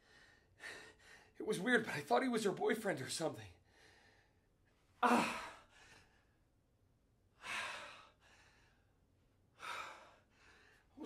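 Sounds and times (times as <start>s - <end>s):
man breathing out heavily: 9.6s - 10.9s.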